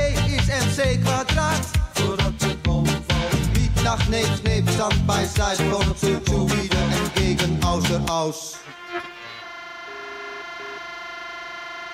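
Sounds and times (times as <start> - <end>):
short high synth note: 8.6 - 11.9
sustained synthesizer chord: 8.6 - 11.9.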